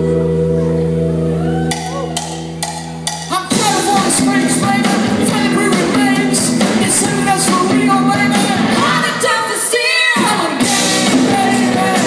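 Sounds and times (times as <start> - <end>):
live rock band: 0.0 - 12.0
person singing: 3.3 - 12.0.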